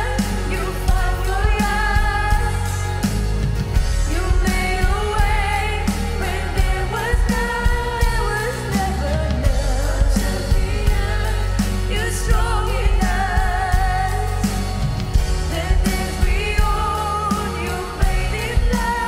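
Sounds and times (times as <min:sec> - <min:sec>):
band with guitars and drums: 0:00.0 - 0:19.0
women singing: 0:00.0 - 0:19.0.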